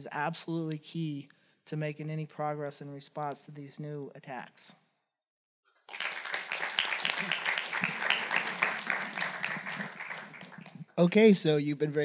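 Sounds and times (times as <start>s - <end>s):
audience applauding: 5.9s - 11.2s.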